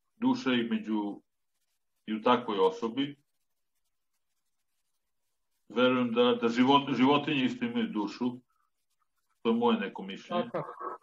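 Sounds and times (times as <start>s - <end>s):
man speaking: 9.5s - 11.0s.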